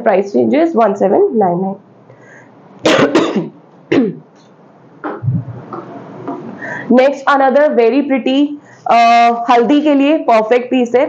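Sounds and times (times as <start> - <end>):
woman coughing: 2.8 - 4.2.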